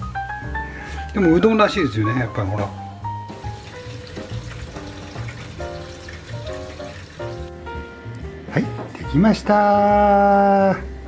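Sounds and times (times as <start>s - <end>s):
background music with held notes: 0.0s - 11.0s
tap water running into steel bowl: 3.3s - 7.5s.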